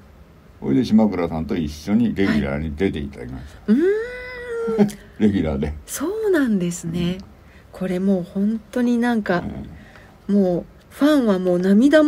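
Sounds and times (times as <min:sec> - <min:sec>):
person talking: 0:02.1 - 0:04.0.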